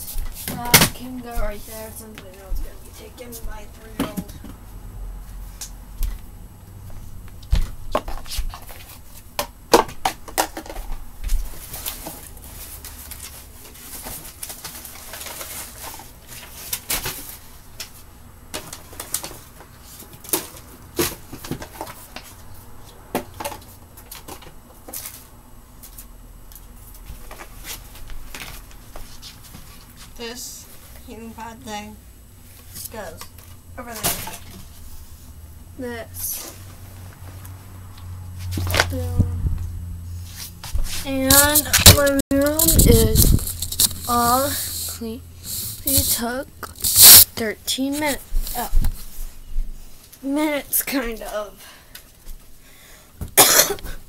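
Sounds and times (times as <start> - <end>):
rustling: 40.1 - 47.3.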